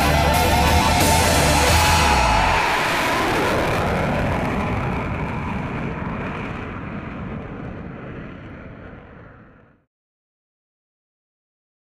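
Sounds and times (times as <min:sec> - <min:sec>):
jet aircraft engine: 0:00.0 - 0:09.9.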